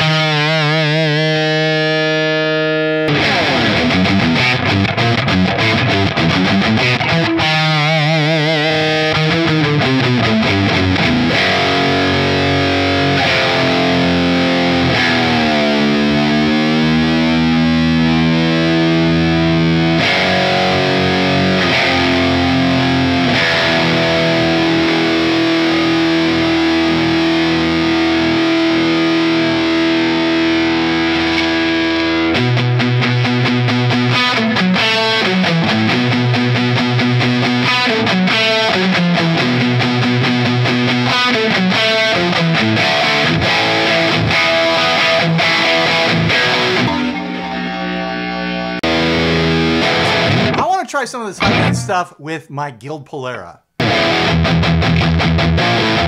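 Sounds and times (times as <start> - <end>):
distorted electric guitar: 0.0 - 52.1, 53.7 - 56.0.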